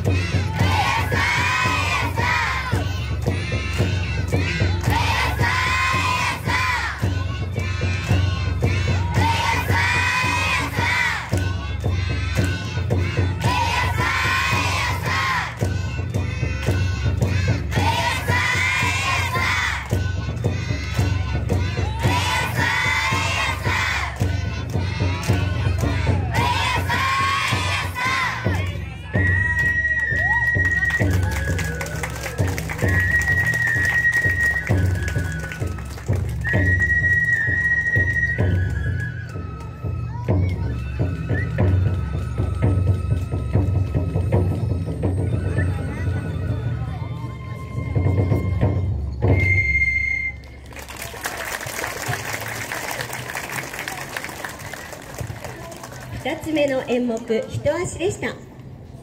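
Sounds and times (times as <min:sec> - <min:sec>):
children chanting and calling out: 0:00.0 - 0:29.0
bamboo flute high notes: 0:00.0 - 0:50.7.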